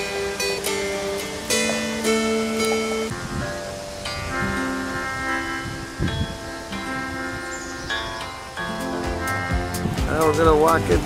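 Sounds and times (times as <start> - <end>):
table zither notes: 0.0 - 10.0
melodica held notes: 0.0 - 11.0
plucked dulcimer: 0.0 - 11.0.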